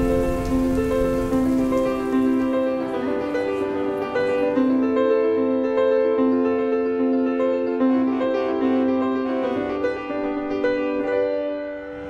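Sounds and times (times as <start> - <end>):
steady rain: 0.0 - 5.0
slow keyboard music: 0.0 - 12.0.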